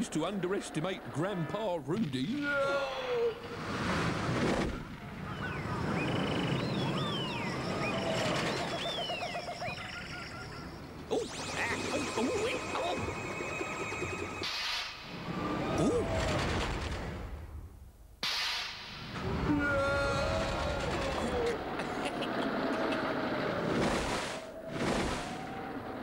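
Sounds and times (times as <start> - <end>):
high whistling glides: 5.2 - 15.7
cartoon chase music: 5.5 - 14.5.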